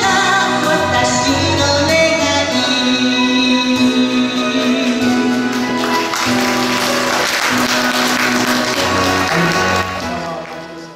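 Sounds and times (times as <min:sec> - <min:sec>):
recorded backing music: 0:00.0 - 0:10.9
audience applause: 0:05.5 - 0:10.9.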